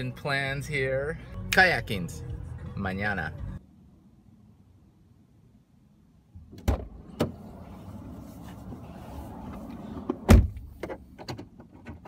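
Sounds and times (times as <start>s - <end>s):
loud deep thump: 10.3s - 10.7s.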